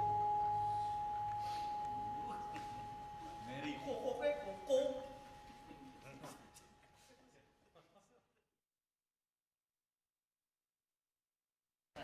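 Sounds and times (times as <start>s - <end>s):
gamelan note ringing: 0.0s - 6.2s
gamelan ensemble playing: 0.0s - 6.5s.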